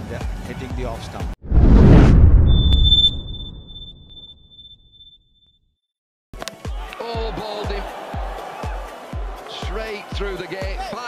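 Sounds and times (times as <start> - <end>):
booming transition sound effect: 1.4 - 4.3
thin high ringing tone: 2.5 - 5.2.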